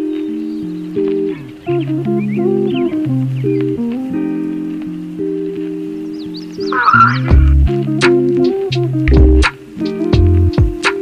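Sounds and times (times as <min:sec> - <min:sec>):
high chirping sounds: 0:00.0 - 0:10.1
deep bass notes: 0:06.7 - 0:09.5, 0:10.2 - 0:10.7
live band music: 0:06.9 - 0:11.0
kick drum: 0:07.3 - 0:07.7, 0:09.1 - 0:09.4, 0:10.2 - 0:10.8.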